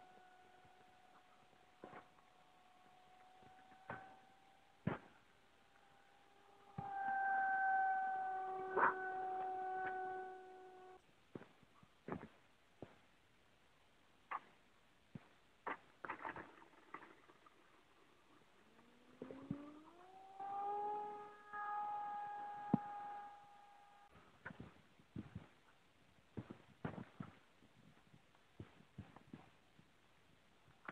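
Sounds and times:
model airplane motor: 0:00.0 - 0:11.0, 0:16.7 - 0:24.1.

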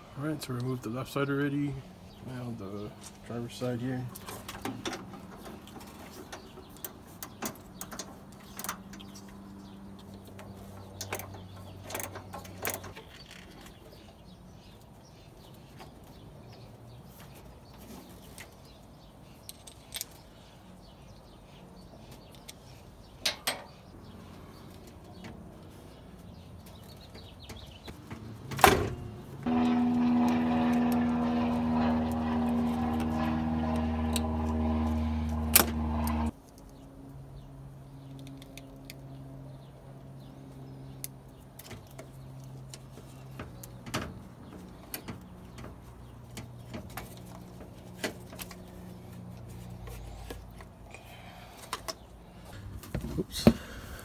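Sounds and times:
steady fixed-pitch drone: 0:29.5 - 0:36.3.

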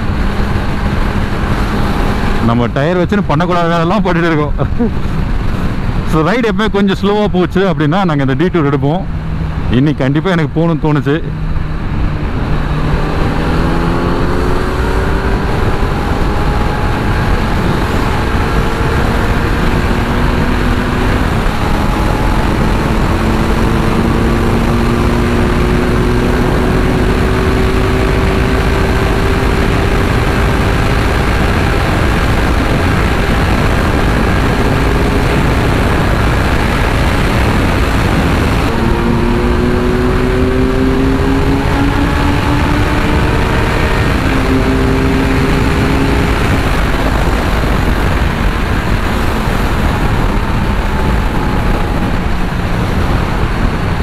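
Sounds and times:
motorcycle engine at highway speed: 0:00.0 - 0:54.0
wind rush on microphone: 0:00.0 - 0:54.0.

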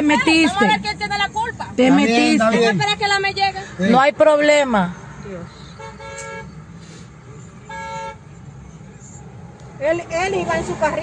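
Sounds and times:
traffic rumble: 0:00.0 - 0:11.0
car horn toots: 0:05.8 - 0:06.6, 0:07.6 - 0:08.3.

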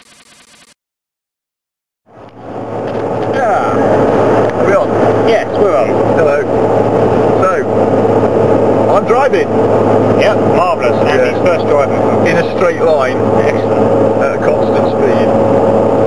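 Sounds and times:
car cabin road and engine noise: 0:02.1 - 0:16.0
people talking: 0:03.2 - 0:06.6, 0:07.3 - 0:07.7, 0:08.8 - 0:09.5, 0:10.2 - 0:15.4.

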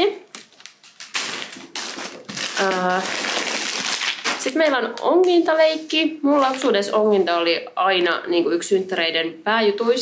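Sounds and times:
plastic bag crinkling: 0:00.3 - 0:05.5.

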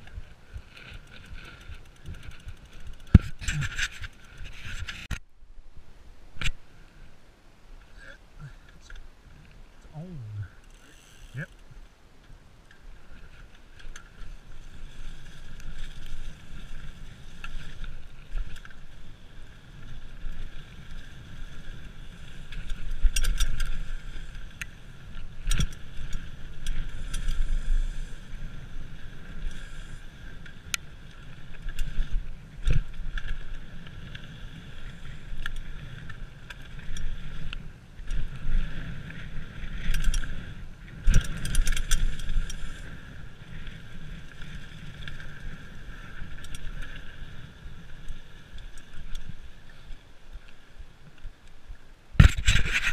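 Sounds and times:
bike clicking and rattling: 0:00.0 - 0:05.3, 0:10.6 - 0:52.9
bike tyres rolling over dirt: 0:00.0 - 0:10.0, 0:10.6 - 0:52.9.

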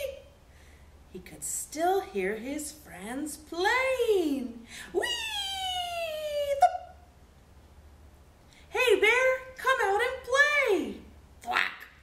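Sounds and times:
woman calling a high falling wheee: 0:03.7 - 0:07.0.

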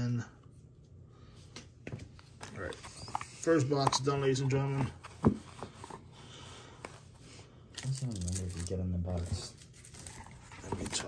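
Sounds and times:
cards rustling: 0:06.8 - 0:11.0.

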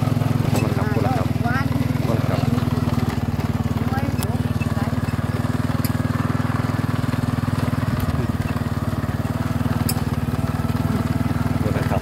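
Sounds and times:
small motorcycle engine running: 0:00.0 - 0:12.0.

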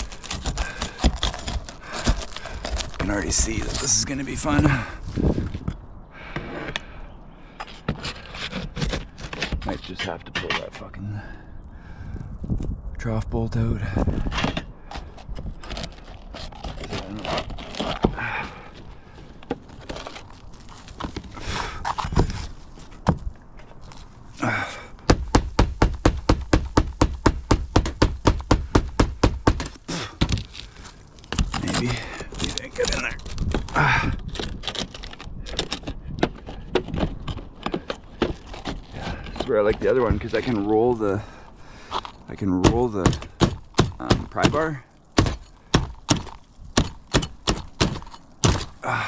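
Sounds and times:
pry bar scraping shingles: 0:00.0 - 0:10.9, 0:14.2 - 0:49.0.

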